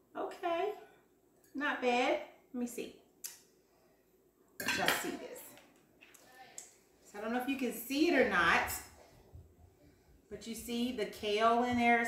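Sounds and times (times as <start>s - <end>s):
cutlery clinking against a plate: 4.6s - 5.1s.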